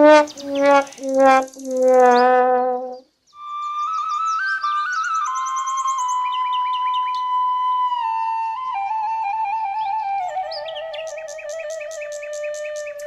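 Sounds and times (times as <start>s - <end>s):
birds chirping and trilling: 0.0s - 2.4s, 3.3s - 7.4s, 9.8s - 13.0s
low held note: 0.0s - 3.0s
slow flute melody: 0.0s - 13.0s.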